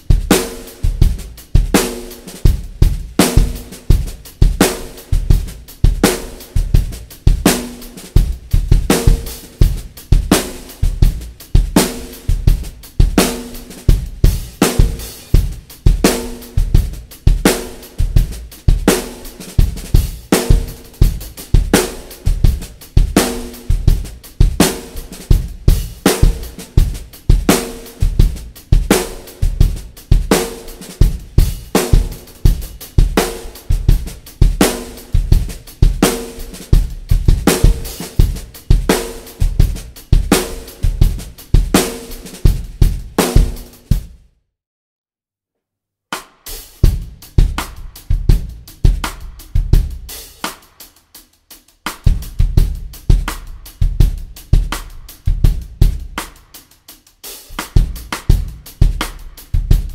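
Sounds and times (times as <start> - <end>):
low-tuned snare drum ringing: 0.0 - 43.9, 57.4 - 59.9
drum kit groove: 0.0 - 44.3, 46.1 - 59.9.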